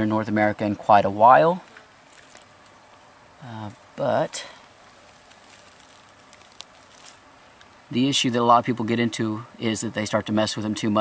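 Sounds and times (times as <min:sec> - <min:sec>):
steady high hiss: 0:00.0 - 0:11.0
snake crawling through dry leaves: 0:01.6 - 0:07.9.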